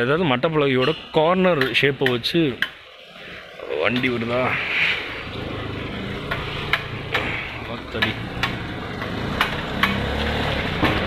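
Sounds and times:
sharp taps: 0.8 - 2.8, 6.2 - 10.9
small engine rumbling past: 2.8 - 11.0.

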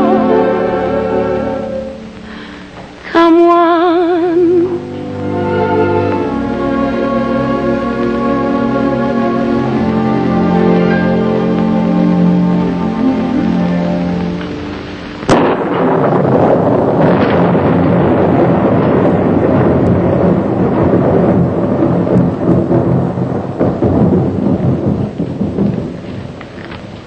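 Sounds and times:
orchestral chord: 0.0 - 2.5, 3.2 - 16.2
heavy rain: 0.0 - 27.0
rolling thunder: 4.0 - 27.0
sharp thunderclap: 9.5 - 27.0.

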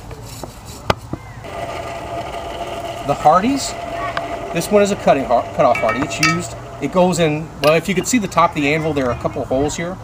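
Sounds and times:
steady hum: 1.4 - 8.2
metal tongs clinking: 5.6 - 6.9.

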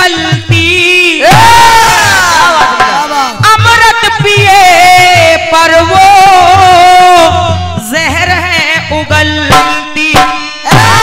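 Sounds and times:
drum beat: 0.1 - 7.0, 9.5 - 11.0
crowd shouting together: 1.2 - 3.4, 10.7 - 11.0.

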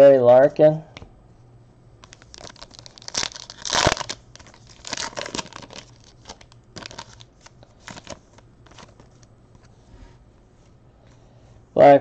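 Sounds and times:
card packaging crinkling: 2.0 - 9.3.

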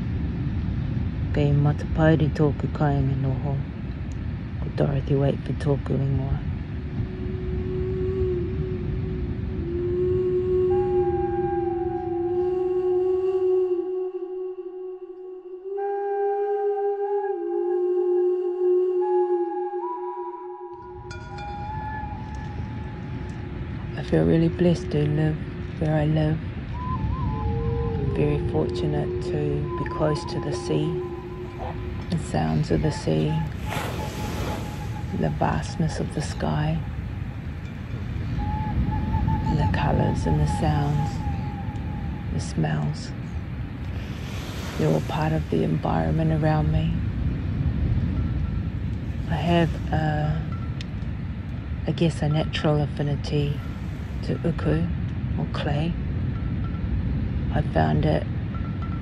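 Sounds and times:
low outdoor rumble: 0.0 - 15.4, 21.0 - 59.0
faint ambient music tones: 0.0 - 59.0
small waves washing on sand: 32.4 - 37.6, 43.8 - 46.2.

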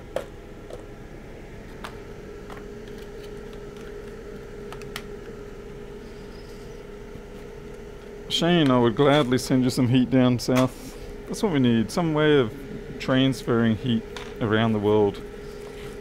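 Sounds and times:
fan humming: 0.0 - 16.0.

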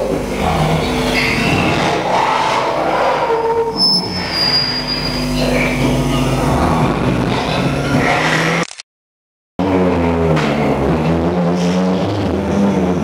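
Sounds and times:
squealing tones: 0.4 - 8.6
high whistle-like tone: 3.8 - 5.4.

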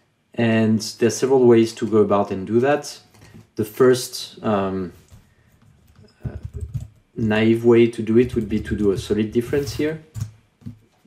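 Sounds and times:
computer keyboard typing: 5.7 - 7.1, 8.1 - 10.8.

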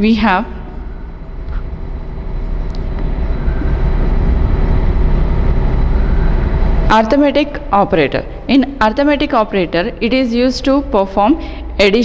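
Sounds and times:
loud low rumble: 0.0 - 11.9.

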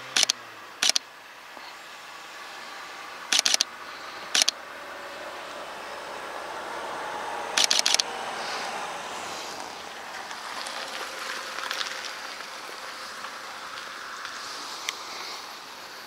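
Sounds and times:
outdoor background noise: 0.0 - 16.0
camera shutter clicks: 0.1 - 1.0, 3.3 - 3.7, 4.4 - 4.6, 7.6 - 8.1.

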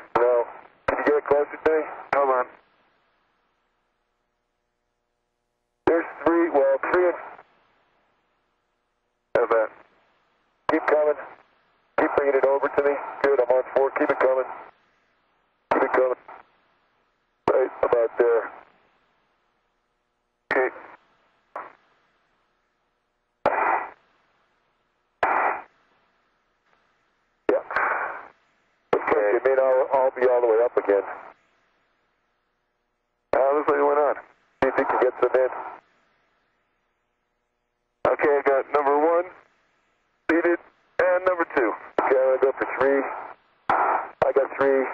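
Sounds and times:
radio transmission click: 0.0 - 2.6, 10.7 - 11.4, 15.7 - 16.5, 20.5 - 21.0, 21.6 - 21.9, 23.4 - 24.0, 25.2 - 25.7, 27.5 - 28.3, 29.0 - 31.4, 33.4 - 35.8, 38.0 - 39.4, 40.3 - 44.9
voices over radio link: 0.0 - 2.6, 5.9 - 7.4, 9.4 - 9.8, 10.7 - 11.4, 12.0 - 14.7, 15.7 - 16.4, 17.5 - 18.6, 20.5 - 21.0, 27.5 - 28.3, 29.0 - 31.4, 33.4 - 35.8, 38.1 - 39.4, 40.3 - 44.9.

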